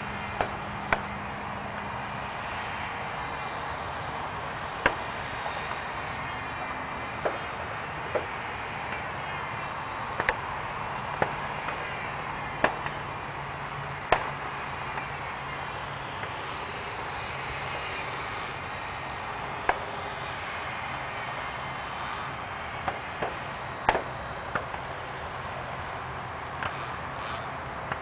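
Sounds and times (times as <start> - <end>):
model plane motor whine: 0.0 - 28.0.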